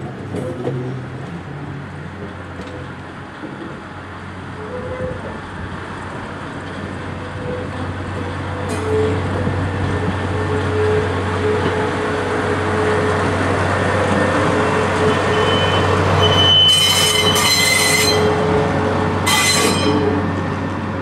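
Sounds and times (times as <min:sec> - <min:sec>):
diesel locomotive engine rumble: 0:00.0 - 0:21.0
steel wheels running on rails: 0:04.7 - 0:21.0
high-pitched wheel squeal: 0:14.6 - 0:18.5, 0:19.2 - 0:20.2.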